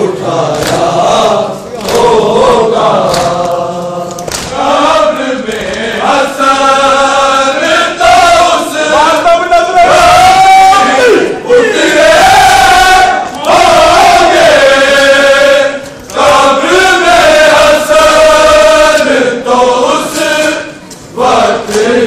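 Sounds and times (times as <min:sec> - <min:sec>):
crowd: 0:00.0 - 0:22.0
men chanting: 0:00.0 - 0:22.0.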